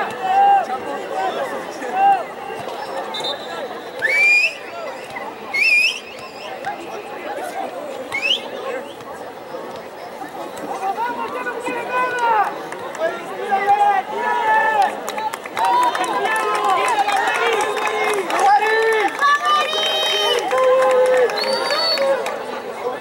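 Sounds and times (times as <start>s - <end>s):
people shouting and calling out: 0.0s - 9.4s, 10.6s - 23.0s.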